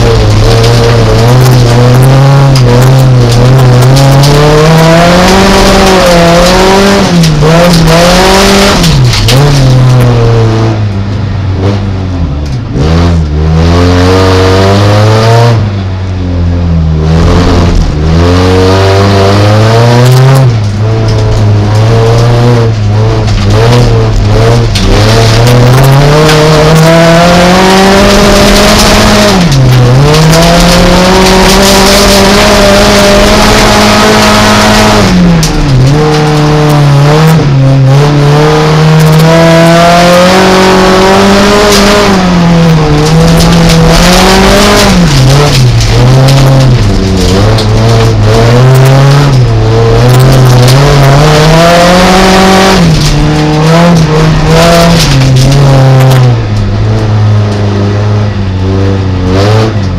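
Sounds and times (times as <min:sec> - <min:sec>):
race car engine revving: 0:00.0 - 0:59.9.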